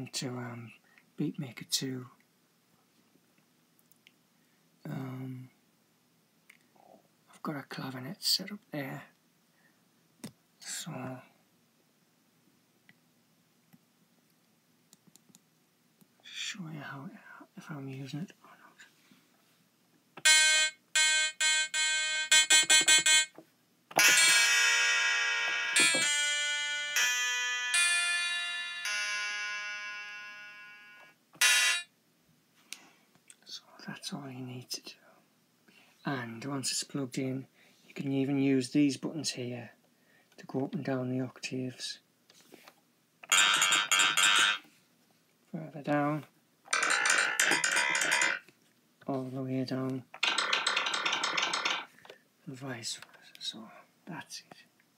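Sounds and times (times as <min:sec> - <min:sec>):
clavinet notes and chords: 0:20.2 - 0:23.3, 0:24.0 - 0:31.8, 0:43.3 - 0:44.6, 0:46.7 - 0:48.4.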